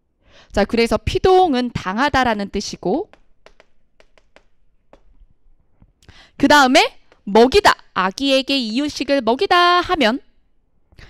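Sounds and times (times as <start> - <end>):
chalk writing on chalkboard: 3.1 - 5.2, 7.0 - 7.4.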